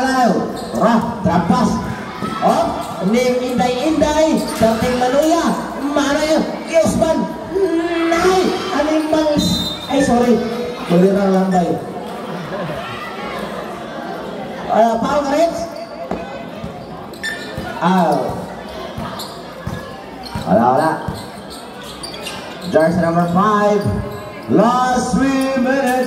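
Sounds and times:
basketball bouncing on court: 0.5 - 5.2, 16.1 - 24.2.

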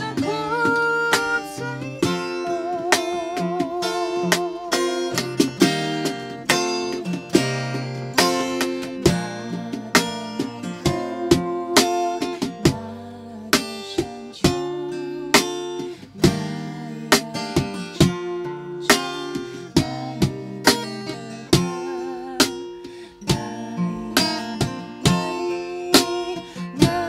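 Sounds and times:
acoustic guitar strumming: 0.0 - 27.0.

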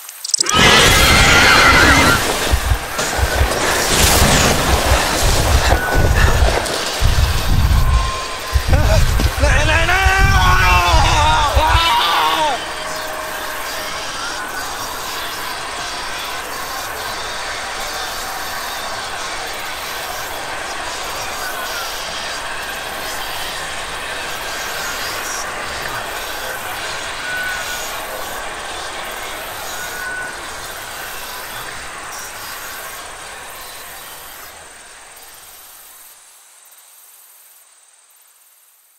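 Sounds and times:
noisy ambience: 0.0 - 38.5.

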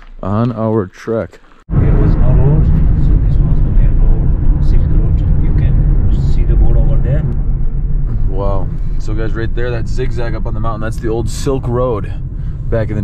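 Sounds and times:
car cabin road rumble: 1.7 - 13.0.

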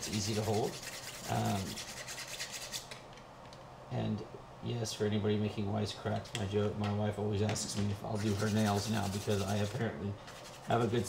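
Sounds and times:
nail file scratching carbon fiber: 0.0 - 3.0.

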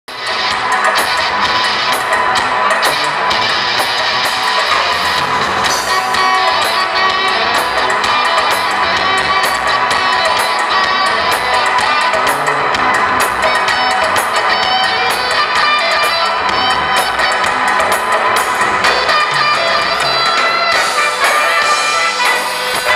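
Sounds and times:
steady percussion beat: 0.1 - 22.9
saxophones and trumpet: 0.2 - 22.9.

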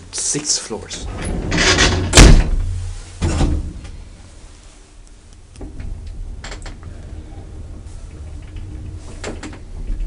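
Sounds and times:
elevator door banging shut: 1.0 - 3.8.

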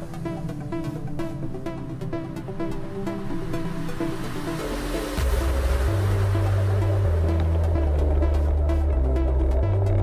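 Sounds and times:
deep bass line: 5.2 - 10.0.

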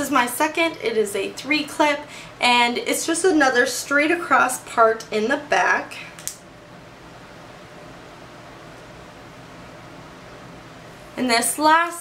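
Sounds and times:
low room tone hiss: 0.0 - 12.0.

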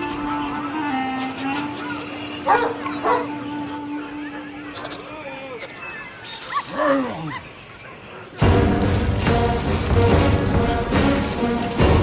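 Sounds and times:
small dog barking: 2.5 - 3.3.

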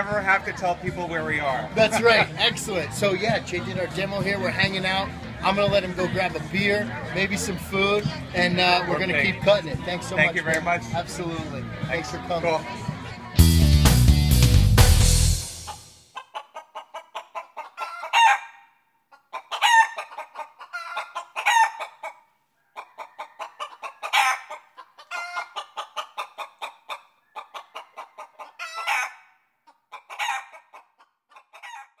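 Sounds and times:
hen cackling: 15.6 - 32.0.

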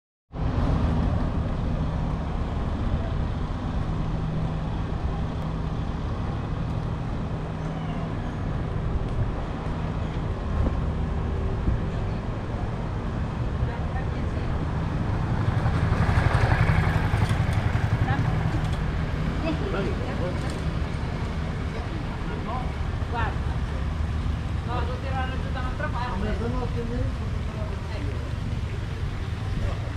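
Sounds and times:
traffic engine hum: 0.3 - 29.9
passers-by talking: 11.2 - 29.9
motor scooter approaching: 13.9 - 24.9.

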